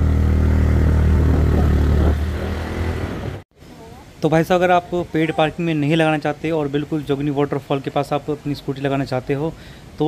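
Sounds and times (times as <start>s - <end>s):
scooter engine running: 0.0s - 3.4s.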